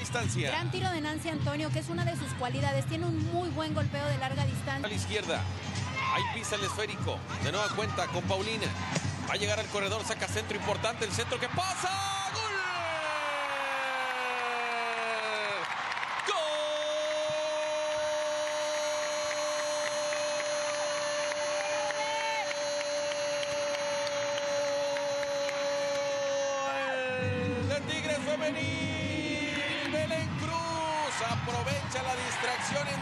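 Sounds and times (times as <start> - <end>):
crowd cheering: 9.4 - 33.0.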